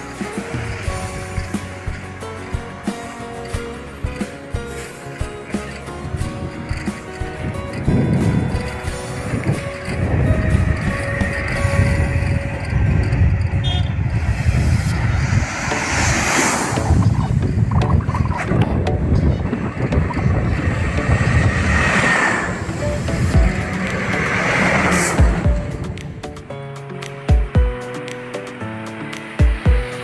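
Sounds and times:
vehicle passing: 0.0s - 18.8s, 19.4s - 26.5s
wind rumbling on microphone: 5.9s - 26.5s.

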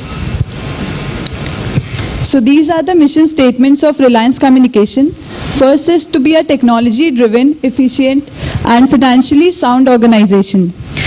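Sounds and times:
room noise hiss and rumble: 0.0s - 11.0s.

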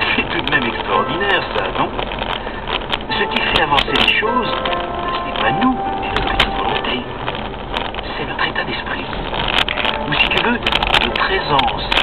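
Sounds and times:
car driving noise from inside: 0.0s - 12.0s
person speaking: 3.1s - 7.2s.

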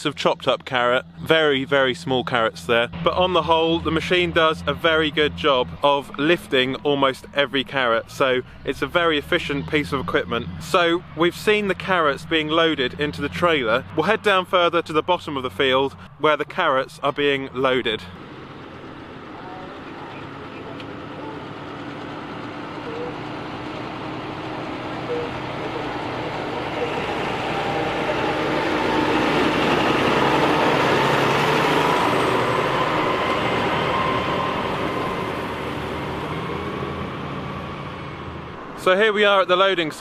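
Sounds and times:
tractor pulling trailer driving past: 0.0s - 40.0s.

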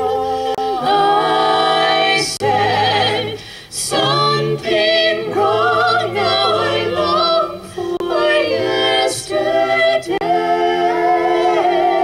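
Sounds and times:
a cappella group singing in harmony: 0.0s - 12.0s.

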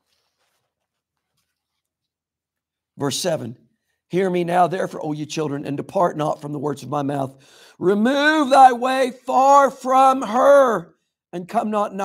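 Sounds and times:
faint scratchy rustle: 0.0s - 2.2s.

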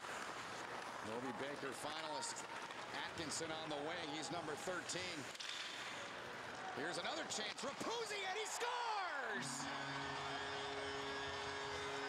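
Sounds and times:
crowd cheering: 6.2s - 12.0s.

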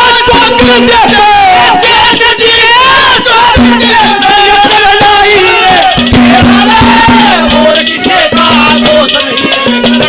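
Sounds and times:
man singing: 0.0s - 10.0s
folk music accompaniment: 3.4s - 10.0s.

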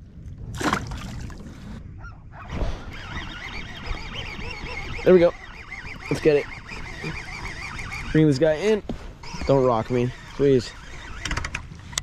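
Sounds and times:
fish splashing into water: 0.5s - 1.4s
fishing reel whining: 2.4s - 12.0s.

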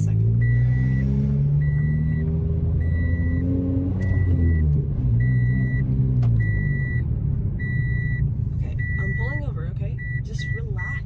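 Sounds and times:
car engine and road rumble: 0.0s - 11.0s
dashboard warning chime beeping: 0.1s - 11.0s.

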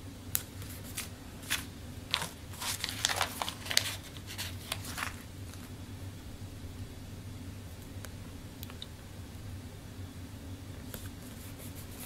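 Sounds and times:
paper stickers crackling and tapping: 0.4s - 5.7s.

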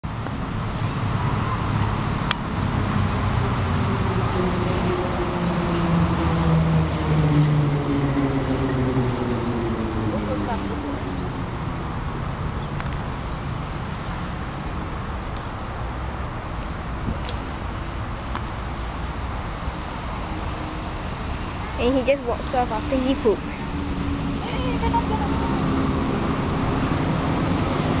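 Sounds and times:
low mechanical drone: 19.9s - 28.0s.

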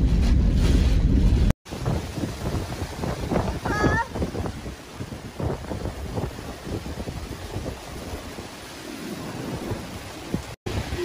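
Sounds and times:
gusty wind: 0.0s - 11.0s
wind buffeting microphone: 0.0s - 11.0s
driving rain: 1.4s - 11.0s.

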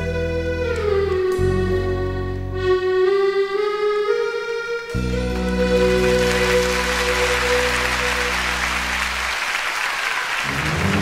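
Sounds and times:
orchestra playing: 0.0s - 11.0s.

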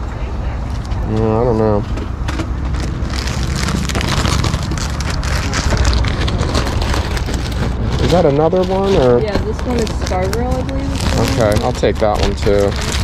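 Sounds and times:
low rumble: 0.0s - 13.0s
plastic bag crinkling: 2.6s - 13.0s.

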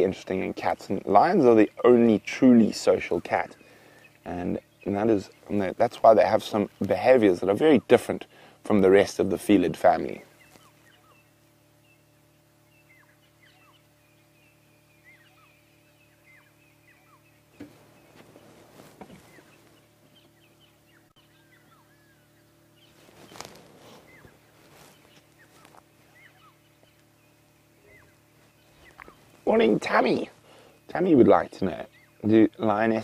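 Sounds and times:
low steady hum: 0.0s - 33.0s
birds chirping and whistling: 3.1s - 6.8s, 10.1s - 32.9s
soft knocks or rustles: 17.6s - 19.8s.

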